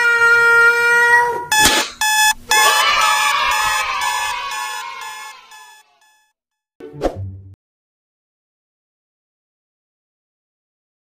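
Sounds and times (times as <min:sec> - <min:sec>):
ringing alarm-like sound effect: 0:01.5 - 0:06.3
person shouting: 0:02.5 - 0:05.1.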